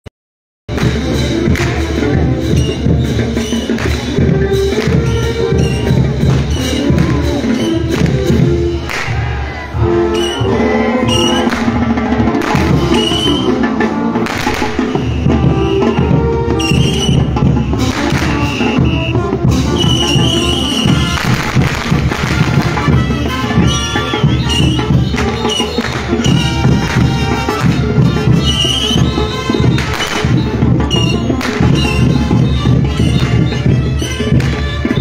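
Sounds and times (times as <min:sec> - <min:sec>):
drum and cymbal beat: 0:00.7 - 0:35.0
horn-like held notes: 0:04.4 - 0:35.0.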